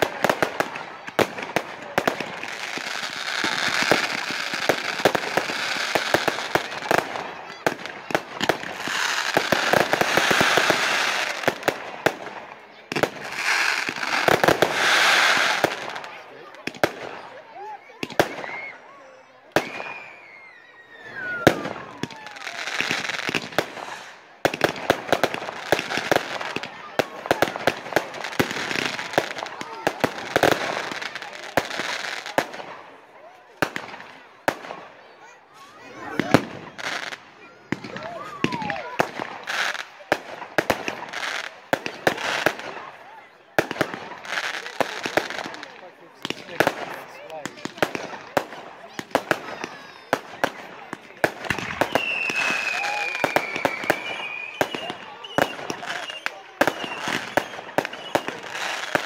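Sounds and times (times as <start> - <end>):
fireworks bangs and crackling: 0.0 - 59.0
falling firework whistle: 19.5 - 22.6, 51.5 - 58.5.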